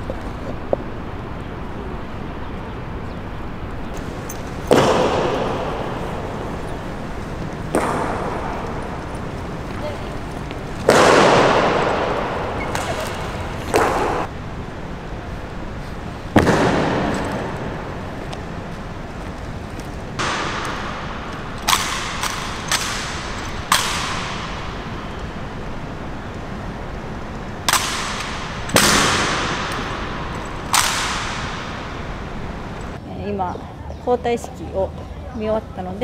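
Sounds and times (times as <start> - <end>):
boots stamping with echo: 3.9 - 14.3, 16.3 - 25.3, 27.7 - 33.0.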